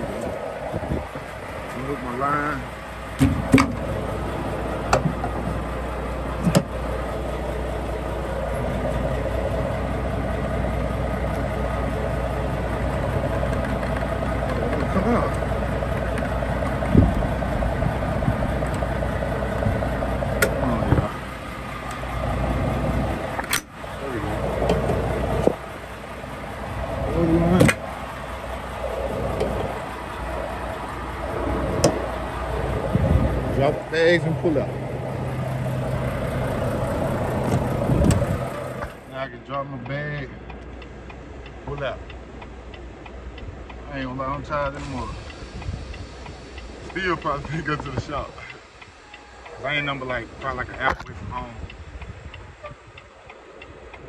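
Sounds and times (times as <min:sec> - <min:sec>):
diesel truck engine idling: 0:00.0 - 0:54.0
sharp clicks and clunks: 0:03.2 - 0:04.0, 0:04.9 - 0:05.6, 0:06.4 - 0:06.8, 0:23.3 - 0:23.7, 0:27.5 - 0:27.9, 0:37.4 - 0:39.0.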